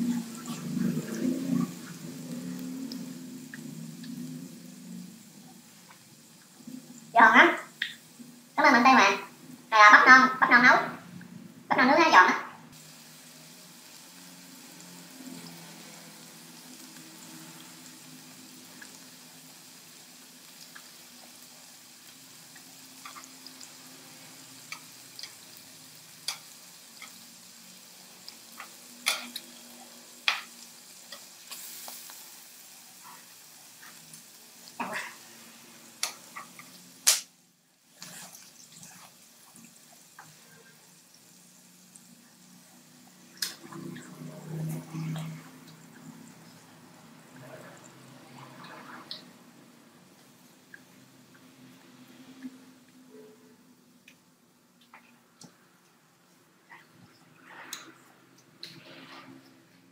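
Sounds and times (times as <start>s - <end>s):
food sizzling on griddle: 0.0s - 10.6s, 12.7s - 53.2s.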